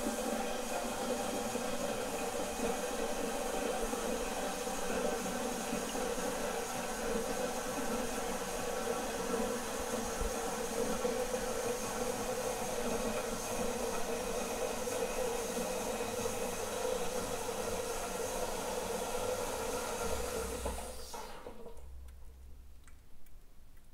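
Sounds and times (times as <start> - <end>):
toilet tank refilling: 0.0 - 22.0.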